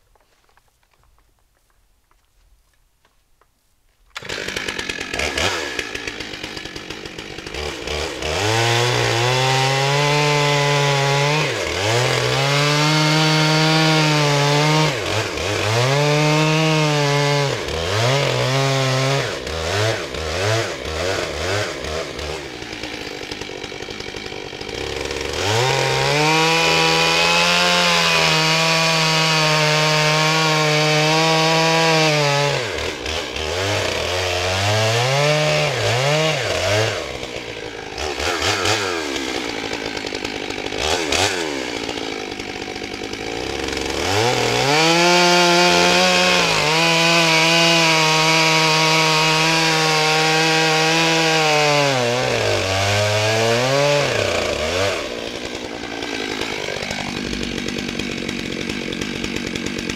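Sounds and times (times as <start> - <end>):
chainsaw cutting logs: 0.0 - 59.9.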